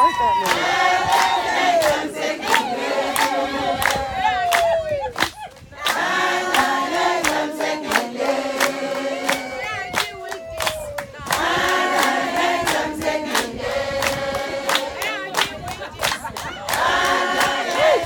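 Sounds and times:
hand claps: 0.4 - 18.0
women singing in chorus: 0.5 - 18.0.

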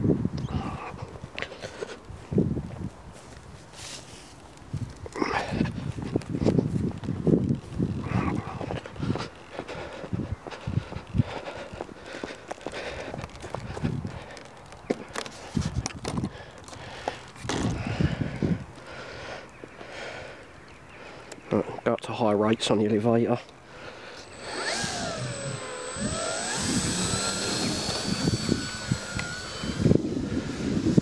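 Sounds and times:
footsteps on grass: 1.8 - 5.1.

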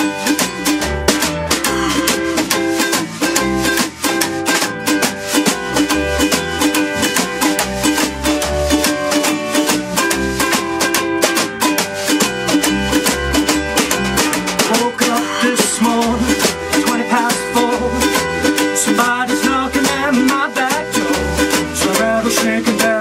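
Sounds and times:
plucked upright bass: 0.0 - 23.0
snare drum beat: 0.0 - 23.0
strummed ukulele: 0.0 - 23.0.

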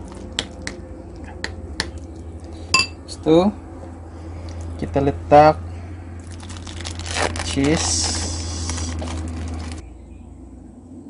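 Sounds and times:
low steady hum: 0.0 - 11.0
fork clinking against ceramic bowl: 2.8 - 3.0.

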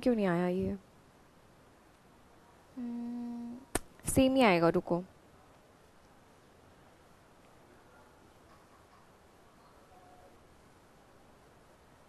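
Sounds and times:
woman humming: 2.8 - 3.7.

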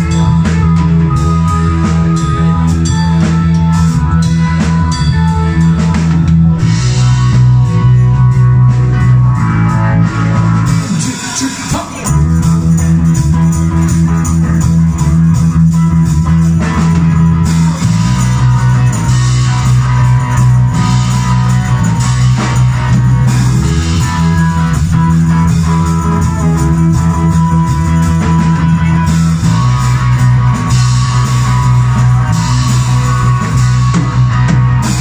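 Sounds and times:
live rock band playing: 0.0 - 35.0.

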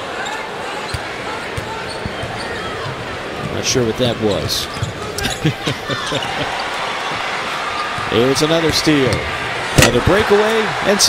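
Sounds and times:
arena background noise: 0.0 - 11.0.

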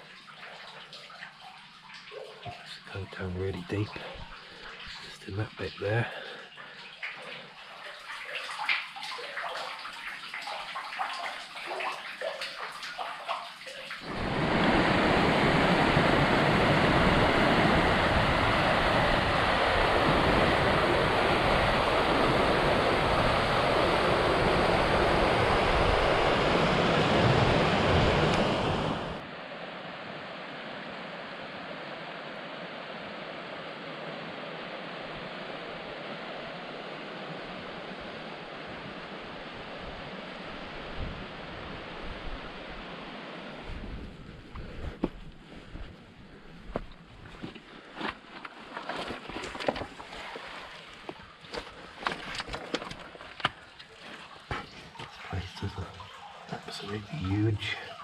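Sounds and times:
water trickling and dripping: 0.0 - 14.1, 49.4 - 58.0
river rushing over rapids: 14.0 - 43.7.

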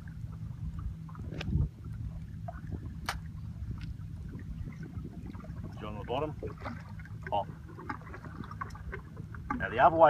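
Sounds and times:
boat engine rumble: 0.0 - 10.0
water against hull: 0.0 - 10.0
wind: 0.0 - 10.0.

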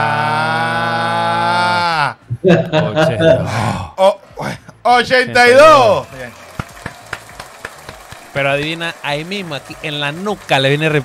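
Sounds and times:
man speaking: 2.4 - 6.1.

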